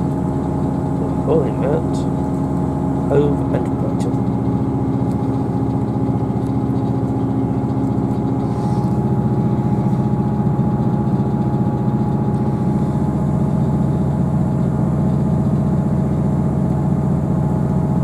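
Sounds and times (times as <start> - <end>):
train diesel engine running: 0.0 - 18.0.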